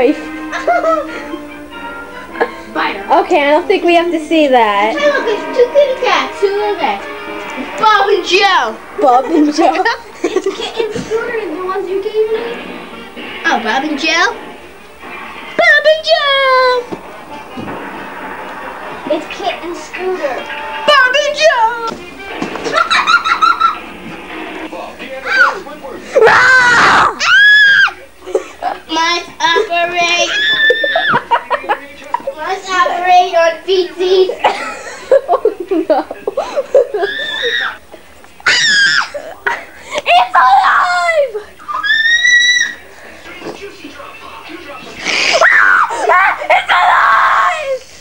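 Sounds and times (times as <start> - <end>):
child screaming: 26.2 - 28.0, 30.2 - 31.1, 37.0 - 37.8, 38.4 - 39.1, 40.2 - 42.8, 45.4 - 47.8.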